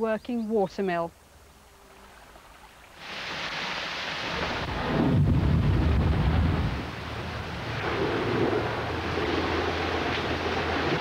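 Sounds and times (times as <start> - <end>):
rushing water: 2.0 - 11.0.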